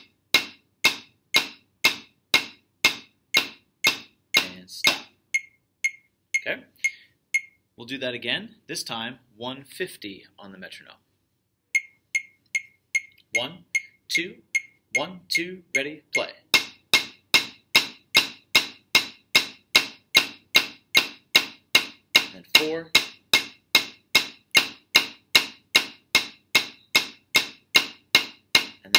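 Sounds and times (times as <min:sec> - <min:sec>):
practice pad strokes: 0:00.0 - 0:06.1, 0:11.8 - 0:28.9
electronic metronome clicking: 0:03.3 - 0:07.6, 0:11.8 - 0:15.9.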